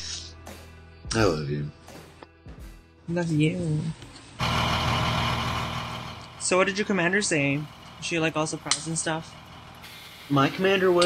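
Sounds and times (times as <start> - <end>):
heavy truck engine running: 4.4 - 10.4.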